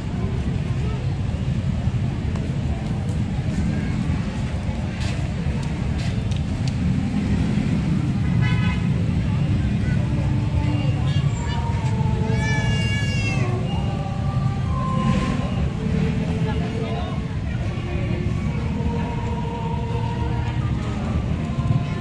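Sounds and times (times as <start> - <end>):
crowd talking: 0.0 - 22.0.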